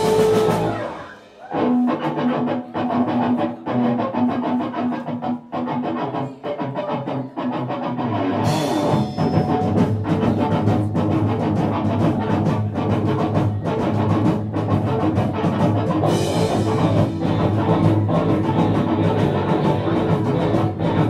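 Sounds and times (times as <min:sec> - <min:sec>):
cymbals: 0:00.0 - 0:01.5, 0:08.5 - 0:10.9
rock band playing: 0:00.0 - 0:21.0.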